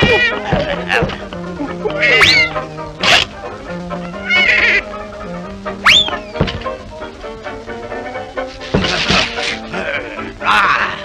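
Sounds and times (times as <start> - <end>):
band music: 0.0 - 11.0.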